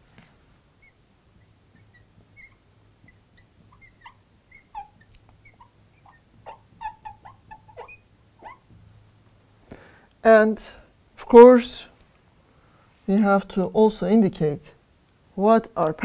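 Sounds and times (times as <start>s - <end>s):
marker squeaking on glass: 0.8s - 8.7s.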